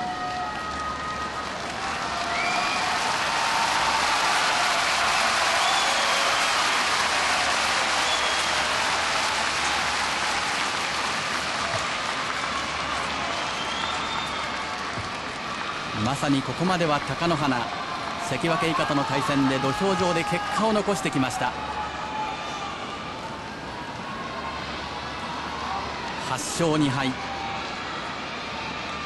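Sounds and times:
crowd clapping: 0.0s - 21.4s
crowd shouts: 0.0s - 29.0s.

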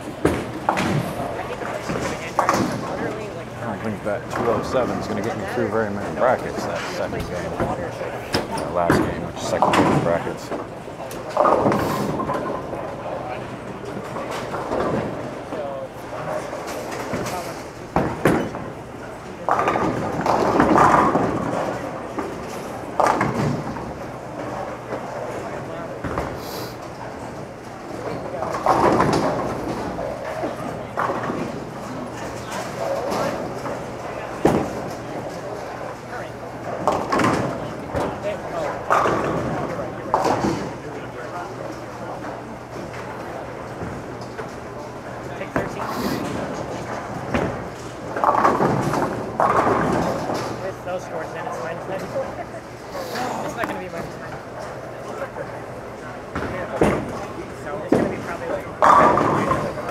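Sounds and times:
indistinct chatter: 0.0s - 59.9s
bowling balls crashing into pins: 19.4s - 26.4s, 27.9s - 36.0s, 36.6s - 40.8s, 45.5s - 50.6s, 55.7s - 59.9s.

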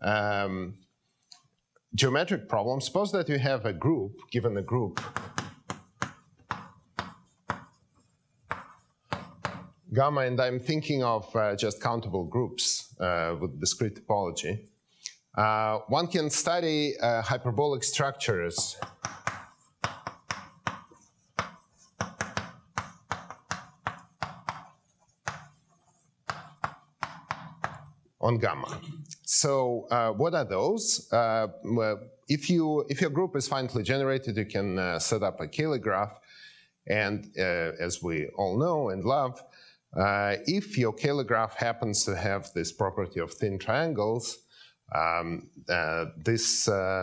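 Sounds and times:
chalk tapping and scratching on blackboard: 4.5s - 9.9s, 18.0s - 28.0s.

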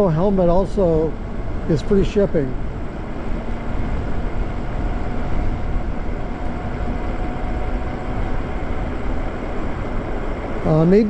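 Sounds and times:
faint steady whine: 0.0s - 11.0s
wind rushing over microphone: 0.0s - 11.0s.

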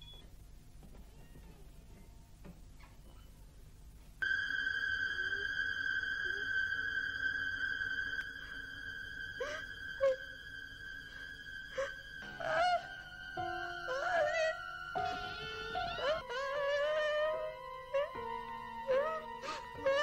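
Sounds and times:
high piercing held tone: 4.2s - 20.0s.

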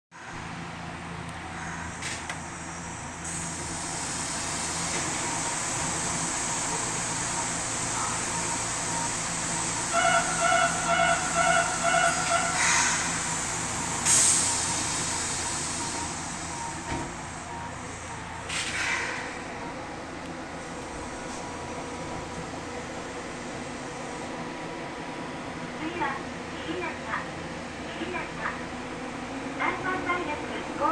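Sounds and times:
train wheels rumbling: 1.4s - 27.2s
short sharp hisses: 12.6s - 13.1s, 18.5s - 19.4s.

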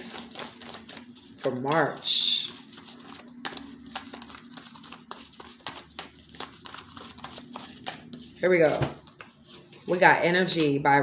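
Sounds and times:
cards being shuffled: 0.0s - 10.0s.

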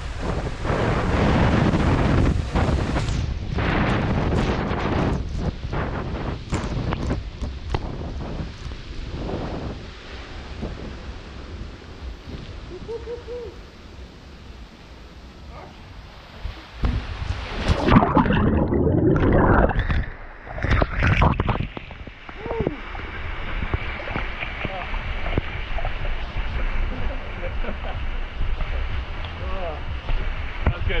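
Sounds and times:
loud water splashing surge: 0.0s - 6.9s, 16.3s - 27.4s
water pouring into pool: 17.4s - 25.5s.

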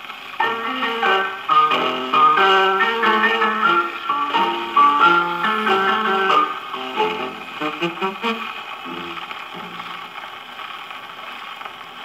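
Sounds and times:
record surface hiss and crackle: 0.0s - 12.0s.

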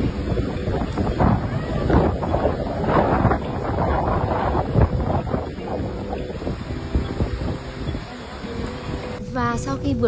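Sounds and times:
storm wind buffeting microphone: 0.0s - 9.2s.

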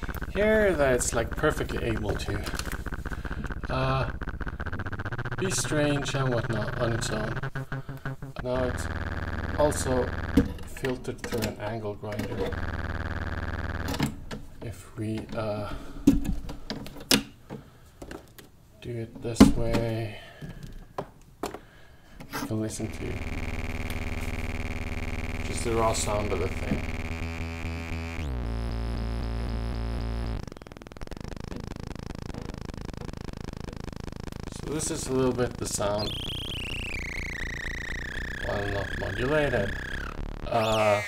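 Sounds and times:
fast low pulsing: 0.0s - 11.0s, 12.4s - 14.3s, 22.8s - 41.0s
synthesizer module clicks and ticks: 0.0s - 11.6s, 12.2s - 14.4s, 22.8s - 41.0s
high synth whistling tone: 36.0s - 41.0s.

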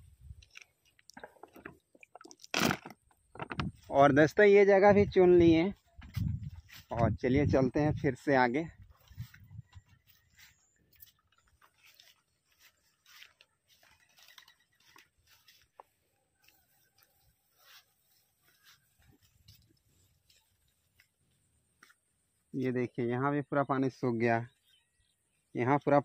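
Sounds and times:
rustling of rice plants: 2.5s - 22.8s
footsteps through paddy field: 2.5s - 23.0s.

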